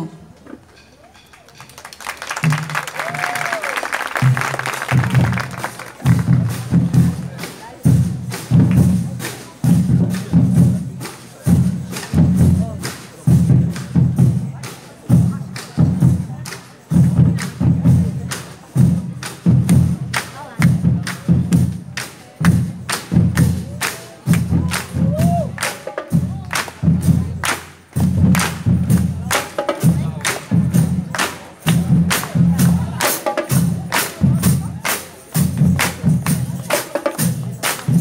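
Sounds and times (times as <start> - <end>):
bass drums beating: 2.4 - 38.0.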